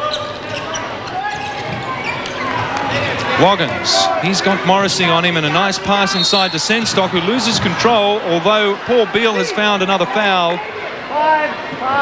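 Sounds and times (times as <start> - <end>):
murmur of arena crowd: 0.0 - 12.0.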